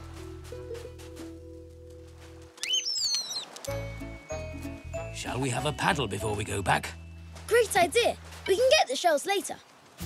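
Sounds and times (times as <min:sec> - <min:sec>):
cartoon bird chirping: 0:02.6 - 0:03.6
background music: 0:03.6 - 0:08.6.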